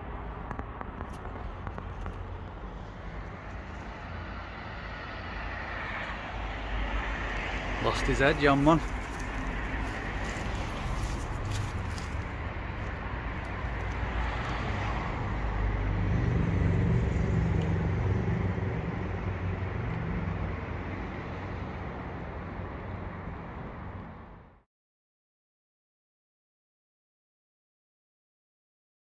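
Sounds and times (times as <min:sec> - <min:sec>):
cars rumbling: 0:00.0 - 0:24.6
vehicle passing: 0:00.2 - 0:24.5.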